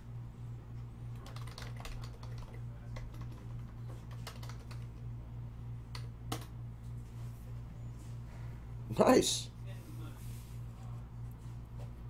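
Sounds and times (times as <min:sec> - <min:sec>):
typing on keyboard: 0:01.2 - 0:04.9.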